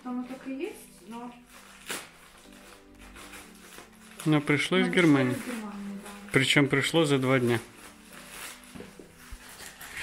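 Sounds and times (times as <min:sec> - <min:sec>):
plastic packaging rustling: 0:00.0 - 0:10.0.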